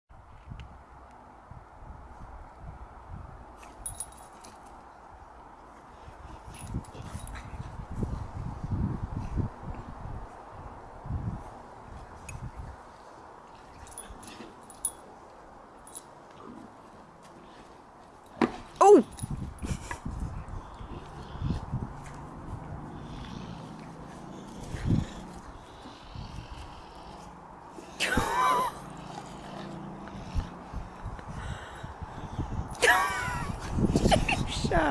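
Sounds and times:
dog grunts: 22.8s - 27.4s.

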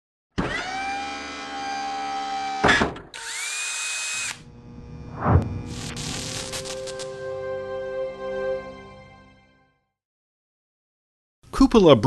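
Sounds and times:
rising power-tool-like whir: 0.4s - 7.2s
whoosh: 4.9s - 6.6s.

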